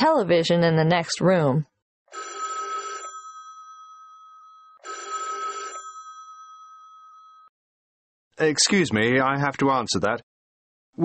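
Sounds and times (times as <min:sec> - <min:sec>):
telephone bell ringing: 0:02.1 - 0:07.5.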